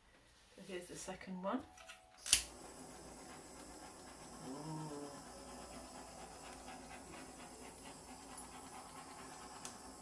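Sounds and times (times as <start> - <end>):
torch igniter click: 2.2 - 2.6
torch flame hissing: 2.4 - 10.0.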